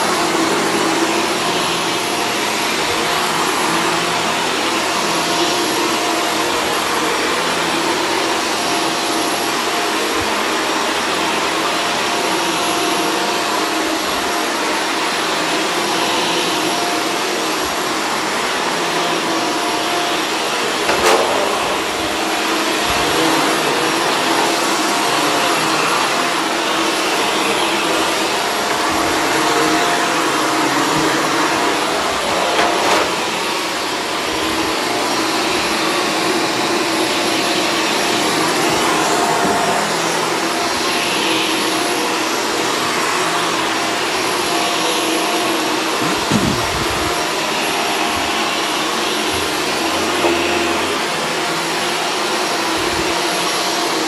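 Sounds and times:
vacuum cleaner on carpet: 0:00.0 - 0:54.0.

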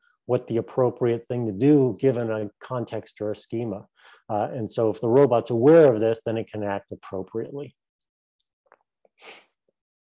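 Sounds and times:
man's sharp intake of breath: 0:09.2 - 0:09.6.

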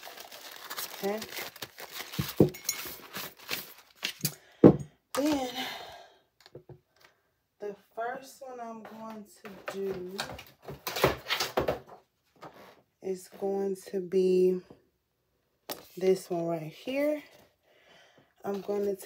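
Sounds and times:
object thunking on tabletop: 0:04.6 - 0:04.9
woman speaking quietly: 0:18.4 - 0:19.0.

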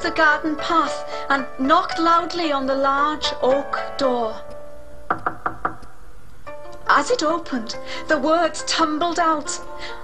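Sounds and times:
soft background music: 0:00.0 - 0:10.0
loud knocking on wooden door: 0:05.1 - 0:05.9.

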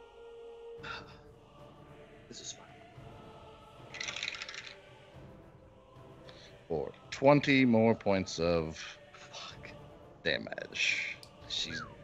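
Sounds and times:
faint background music: 0:00.0 - 0:12.0
dice clattering: 0:04.0 - 0:04.8.

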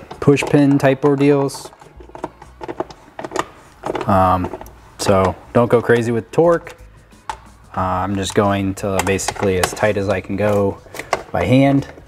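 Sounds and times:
bolt clicking and tapping: 0:06.6 - 0:07.5.

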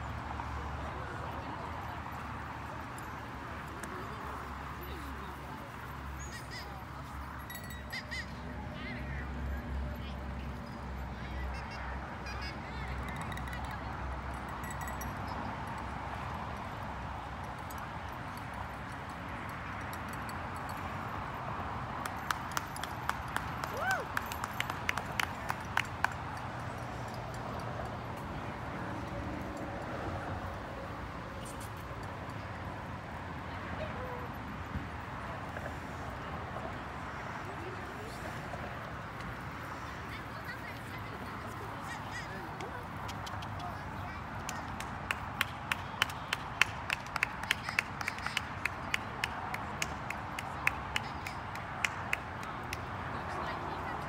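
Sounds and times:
sharp hand claps: 0:22.0 - 0:26.3, 0:44.4 - 0:52.9.

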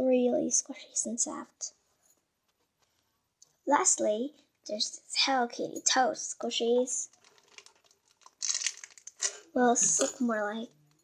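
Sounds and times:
plastic bag crinkling: 0:07.0 - 0:09.6.

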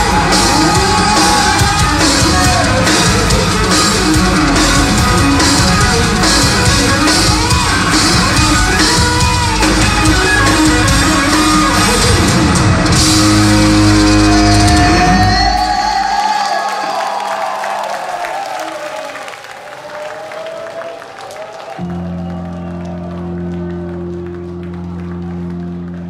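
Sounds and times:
rock band final chord ringing: 0:00.0 - 0:16.2
audience clapping and cheering: 0:00.0 - 0:26.0.

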